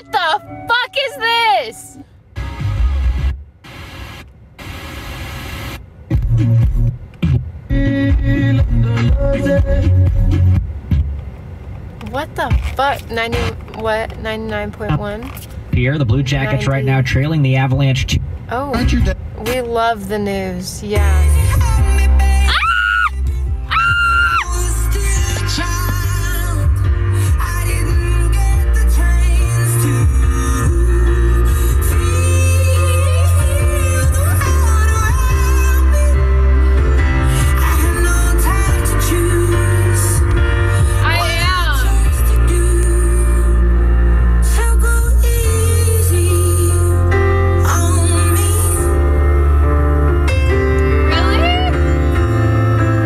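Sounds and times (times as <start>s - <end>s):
car radio music: 0.0s - 47.0s, 47.6s - 53.0s.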